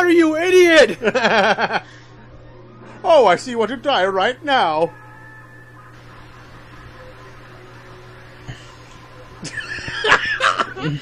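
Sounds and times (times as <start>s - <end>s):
faint steady tones: 0.0s - 11.0s
low electrical hum: 0.0s - 11.0s.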